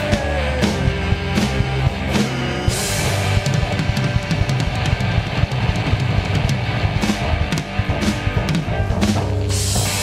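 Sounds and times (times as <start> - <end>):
drum kit beat: 0.0 - 10.0
guitar: 0.0 - 10.0
loud rock music: 0.0 - 10.0.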